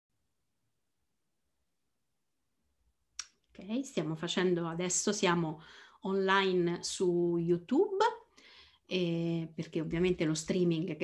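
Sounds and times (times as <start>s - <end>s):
woman speaking: 3.5s - 8.3s, 8.9s - 11.0s.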